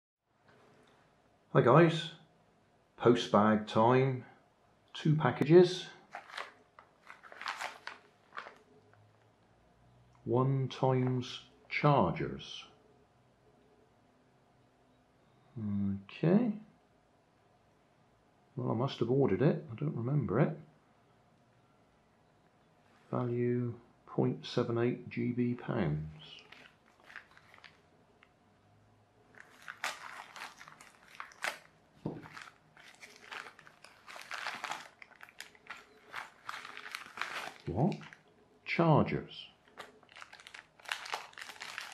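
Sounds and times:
plastic bags crinkling: 0:06.0 - 0:08.7, 0:26.3 - 0:28.3, 0:29.3 - 0:38.3, 0:39.6 - 0:41.9.

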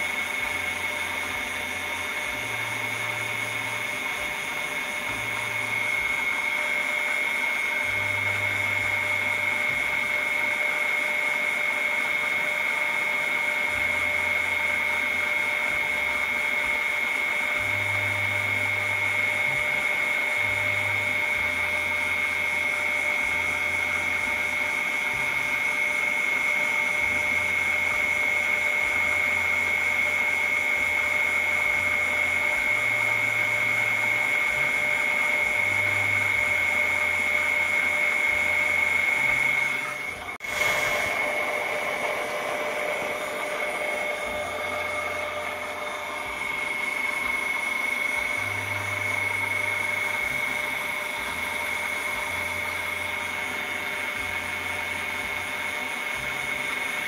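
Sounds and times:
small pump motor whine: 0:00.0 - 0:57.0.

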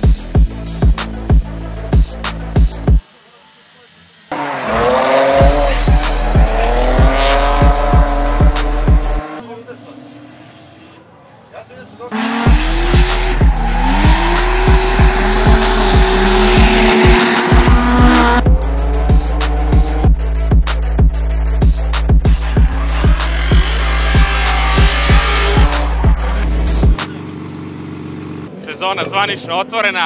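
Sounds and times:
music with beat and deep bass: 0:00.0 - 0:03.0, 0:05.2 - 0:09.2, 0:12.4 - 0:27.2
car engine revving: 0:04.2 - 0:11.2, 0:11.9 - 0:28.5
tyres squealing: 0:10.4 - 0:18.4, 0:22.3 - 0:26.9.

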